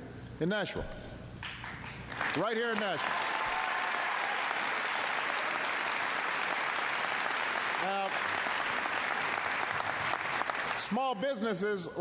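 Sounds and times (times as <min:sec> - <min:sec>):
audience applauding: 0:01.4 - 0:11.2.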